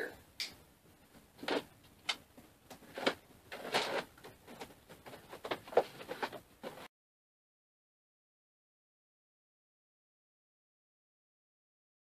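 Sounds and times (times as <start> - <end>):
cardboard scraping and rustling: 2.8 - 6.9.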